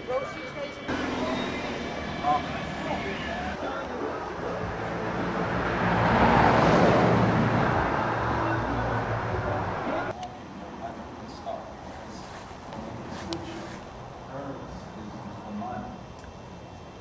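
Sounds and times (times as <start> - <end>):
vehicle passing on road: 0.9 - 10.1.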